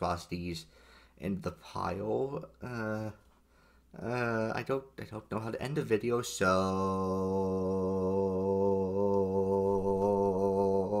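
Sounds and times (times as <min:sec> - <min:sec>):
man chanting low droning note: 0:06.1 - 0:11.0.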